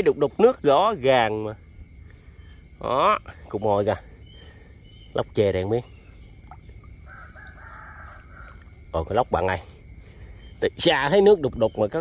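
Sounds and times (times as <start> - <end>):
crickets chirring: 0.0 - 12.0
rooster crowing: 7.0 - 8.8.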